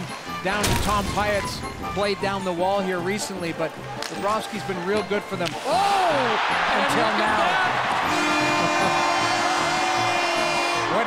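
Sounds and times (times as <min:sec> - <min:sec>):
crowd cheering: 0:03.7 - 0:11.0
arena goal horn: 0:07.4 - 0:11.0.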